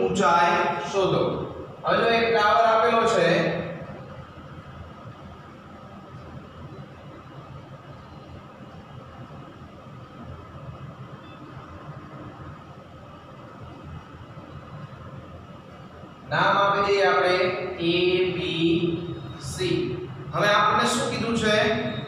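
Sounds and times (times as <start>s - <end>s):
low room hum with hiss: 0.0s - 22.0s.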